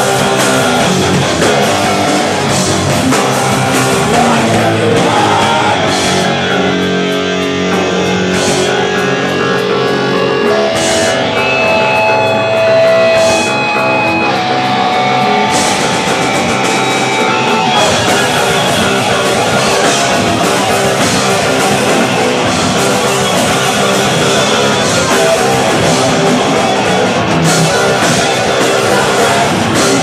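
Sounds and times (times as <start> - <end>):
distorted electric guitar: 0.0 - 30.0
punk band playing live: 0.0 - 30.0.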